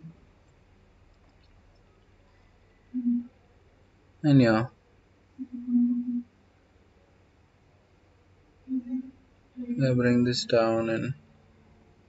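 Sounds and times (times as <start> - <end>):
person humming: 5.4 - 6.2, 8.7 - 11.1.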